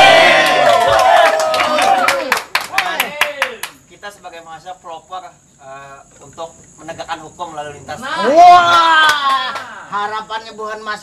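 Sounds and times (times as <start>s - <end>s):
voices cheering: 0.0s - 3.7s, 8.0s - 10.0s
group clapping rhythmically: 0.0s - 3.8s.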